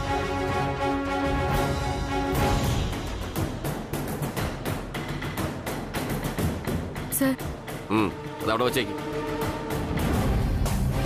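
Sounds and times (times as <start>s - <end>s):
dramatic percussion score: 0.0s - 11.0s.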